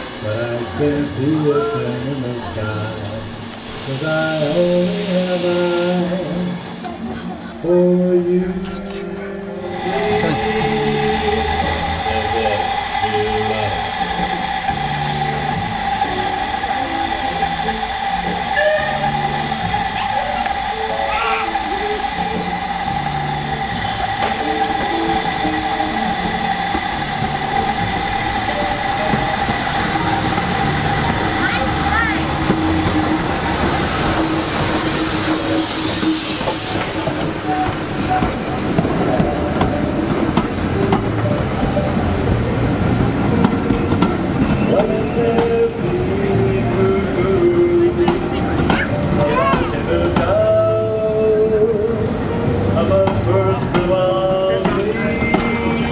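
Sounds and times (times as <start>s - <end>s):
carriages rumbling past: 0.0s - 55.9s
steam locomotive hissing: 0.0s - 55.9s.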